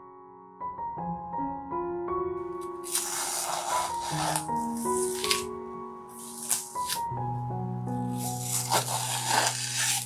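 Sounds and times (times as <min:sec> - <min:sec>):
soft piano music: 0:00.0 - 0:10.0
materials rustling on canvas: 0:02.8 - 0:05.5, 0:06.1 - 0:07.0, 0:08.1 - 0:10.0
short scrape: 0:02.9 - 0:05.5.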